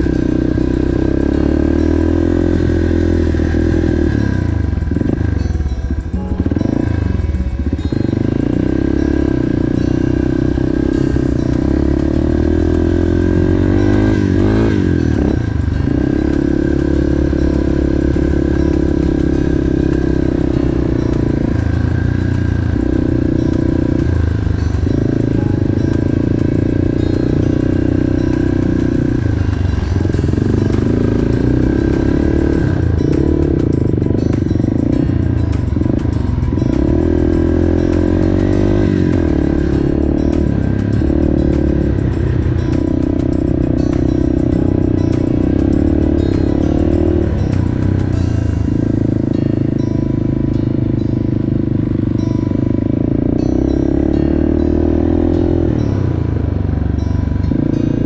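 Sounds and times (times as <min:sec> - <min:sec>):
motorbike engine revving low: 0:00.0 - 0:58.0.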